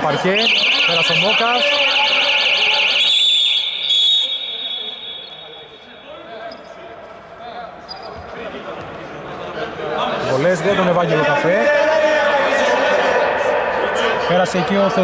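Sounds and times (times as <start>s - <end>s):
referee whistle blast: 0.0s - 6.1s
voices echoing in hall: 0.0s - 15.0s.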